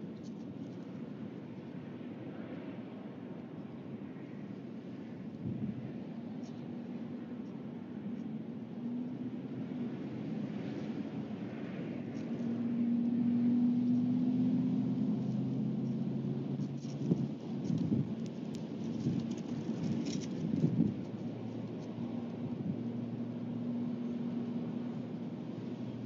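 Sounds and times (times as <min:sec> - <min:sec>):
low steady hum: 0:00.0 - 0:26.0
wind rumbling on microphone: 0:00.0 - 0:26.0.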